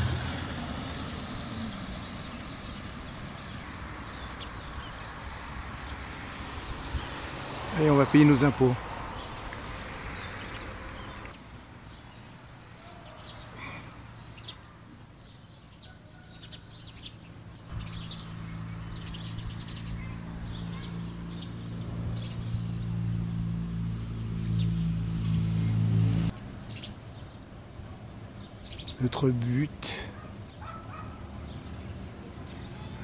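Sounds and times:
small birds chirping: 0:00.0 - 0:33.0
low motor hum: 0:17.7 - 0:26.5.

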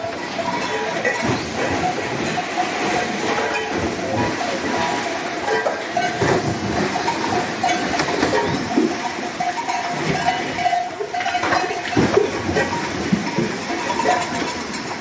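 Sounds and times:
clatter of cattle hooves: 0:00.0 - 0:15.0.

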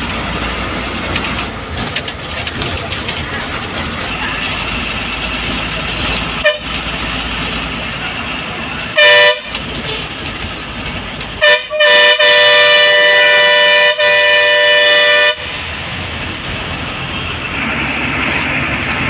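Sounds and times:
bus engine and road noise: 0:00.0 - 0:19.0
bus horn blasts: 0:06.3 - 0:06.9, 0:08.8 - 0:10.1, 0:11.4 - 0:15.7.

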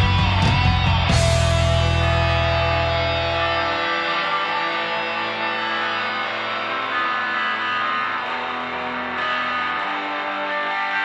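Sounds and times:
distorted electric guitar: 0:00.0 - 0:11.0
rock band playing: 0:00.0 - 0:11.0.

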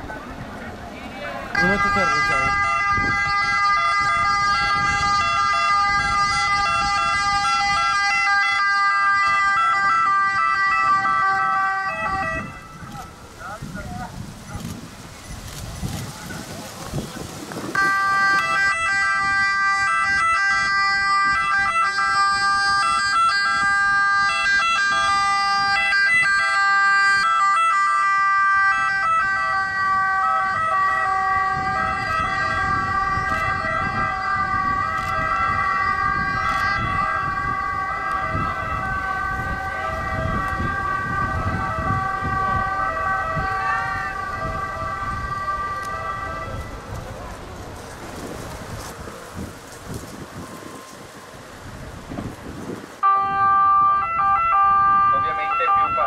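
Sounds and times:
ambulance two-tone siren: 0:01.5 - 0:13.7, 0:14.6 - 0:14.8, 0:15.5 - 0:16.5, 0:17.2 - 0:56.0.

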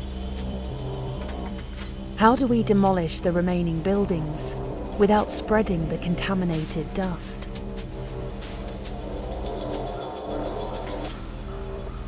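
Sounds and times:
low ambient drone: 0:00.0 - 0:12.0.

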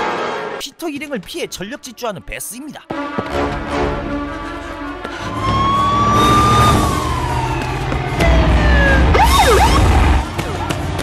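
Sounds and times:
police siren wailing: 0:05.1 - 0:10.3.

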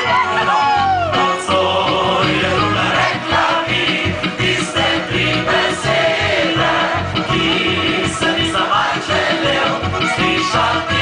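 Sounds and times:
accordion: 0:00.0 - 0:11.0
acoustic guitar: 0:00.0 - 0:11.0
double bass: 0:00.0 - 0:11.0.

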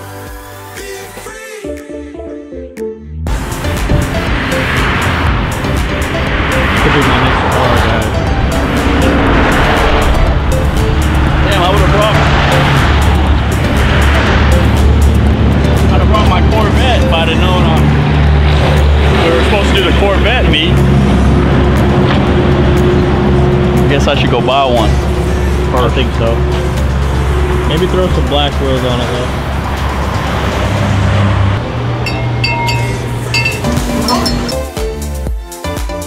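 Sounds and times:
car engine running: 0:03.3 - 0:34.7
road traffic: 0:03.3 - 0:35.3.

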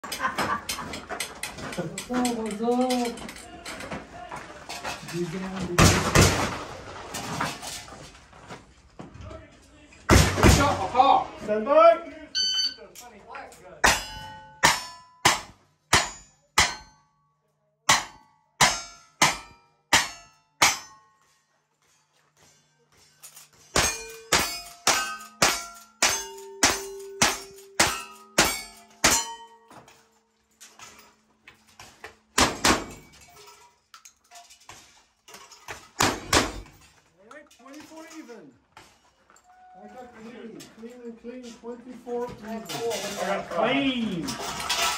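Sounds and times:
steel targets ringing: 0:13.8 - 0:17.1, 0:23.7 - 0:29.7.

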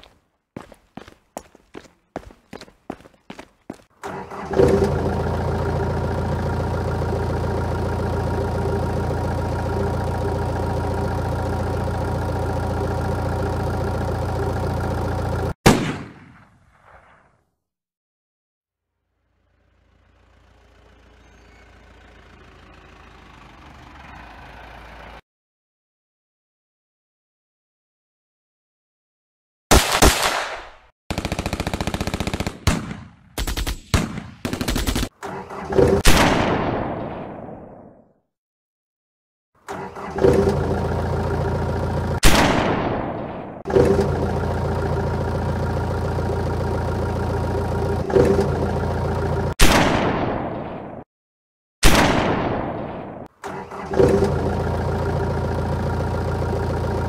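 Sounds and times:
truck engine rumble: 0:00.0 - 0:15.6, 0:19.2 - 0:25.2, 0:35.2 - 0:36.1, 0:39.6 - 0:49.6, 0:53.3 - 0:57.0.

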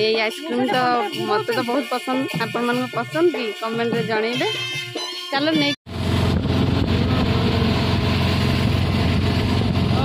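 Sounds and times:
auto-rickshaw engine running: 0:05.9 - 0:10.0
road noise: 0:05.9 - 0:10.0.

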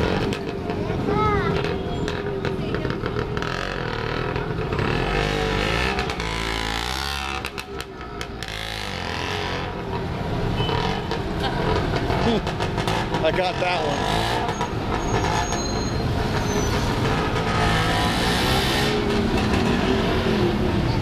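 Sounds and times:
busy street traffic: 0:00.0 - 0:21.0
motor rickshaw engines running: 0:00.0 - 0:21.0
rickshaw passing by: 0:00.0 - 0:21.0.

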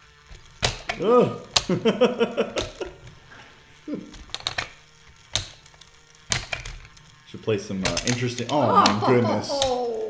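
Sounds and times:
plastic game clicks and clacks: 0:00.2 - 0:01.9, 0:02.5 - 0:03.1, 0:04.1 - 0:07.1, 0:07.7 - 0:10.0.

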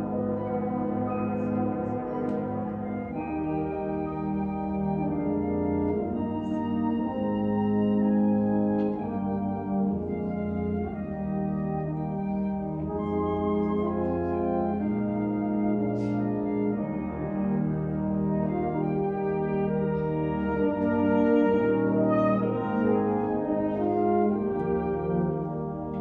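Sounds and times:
concert band sustained chords: 0:00.0 - 0:26.0.

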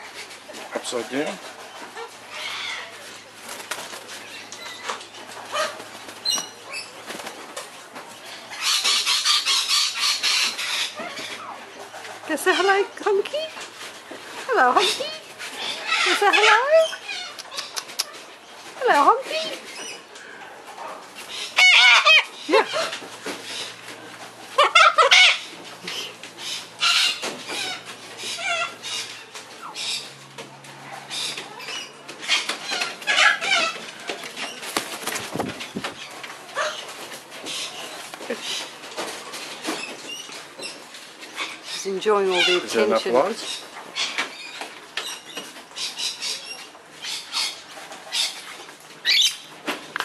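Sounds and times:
bird wings flapping: 0:03.4 - 0:04.2, 0:05.6 - 0:07.7, 0:33.6 - 0:40.0.

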